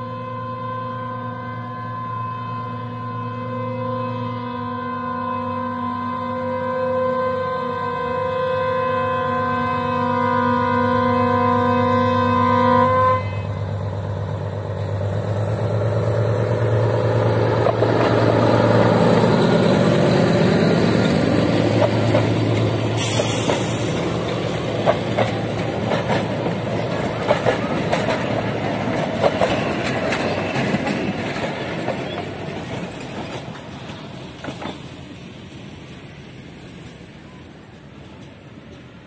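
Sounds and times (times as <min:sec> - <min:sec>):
locomotive chord horn blast: 0:00.0 - 0:14.0
diesel engine passing: 0:13.5 - 0:32.7.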